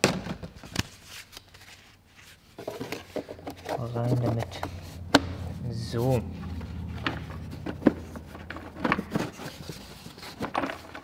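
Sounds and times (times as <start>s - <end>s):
plastic rubbing: 0.8s - 5.5s, 6.2s - 11.0s.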